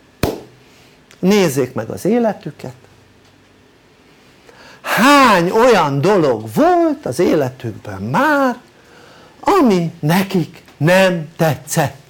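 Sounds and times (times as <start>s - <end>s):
man's intake of breath: 4.1s - 4.9s, 8.8s - 9.4s.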